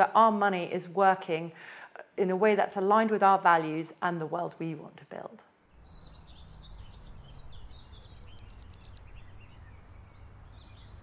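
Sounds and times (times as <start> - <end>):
birds chirping: 5.6 - 11.0
bird's sharp downward-sweeping notes: 5.8 - 11.0.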